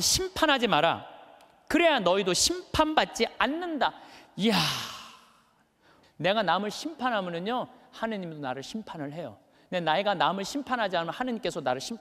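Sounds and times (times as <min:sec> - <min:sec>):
man's breathy exclamation: 0:04.4 - 0:05.5.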